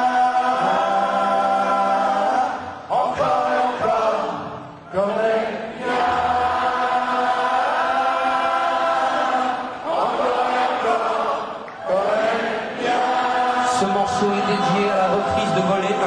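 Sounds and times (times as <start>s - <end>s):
many voices chanting: 0.0s - 16.0s.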